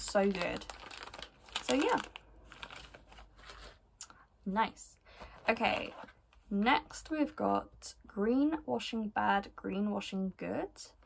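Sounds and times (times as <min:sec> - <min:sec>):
plastic snack packet crinkling: 0:00.0 - 0:03.8.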